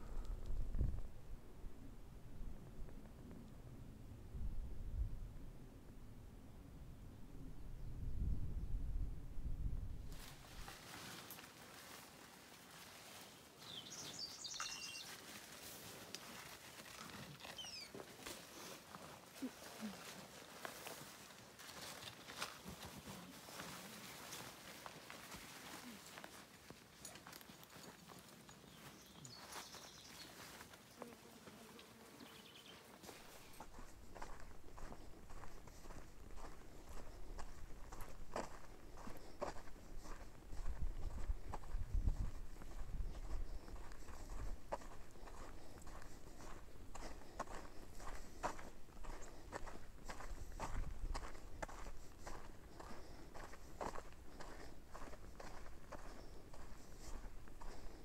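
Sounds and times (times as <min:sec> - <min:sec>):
wind rumble on microphone: 0:00.0 - 0:10.4, 0:39.6 - 0:47.0
footsteps on dirt trail: 0:10.1 - 0:58.0
bird chirps: 0:13.7 - 0:15.2, 0:17.4 - 0:18.0, 0:28.5 - 0:30.4.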